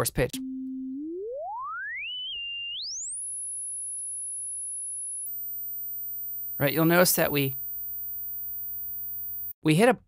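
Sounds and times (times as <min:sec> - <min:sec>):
faint aliased tones: 0:00.0 - 0:09.5
rising synth sine tone: 0:00.3 - 0:09.5.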